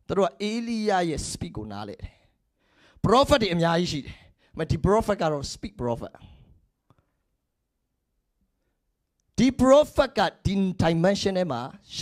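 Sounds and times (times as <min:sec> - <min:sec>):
man speaking into a microphone: 0:00.0 - 0:02.3, 0:03.0 - 0:06.5, 0:09.3 - 0:12.0.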